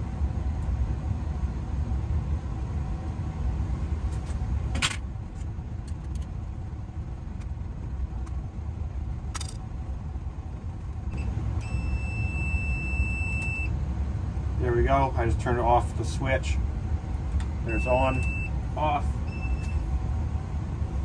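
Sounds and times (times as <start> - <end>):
steady low rumble: 0.0 - 21.0
voltage tester high beep: 11.2 - 13.7, 17.7 - 18.5, 19.3 - 19.8.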